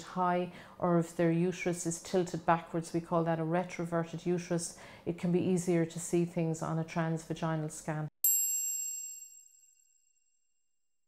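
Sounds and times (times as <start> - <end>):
bright high-pitched chime: 8.2 - 9.9.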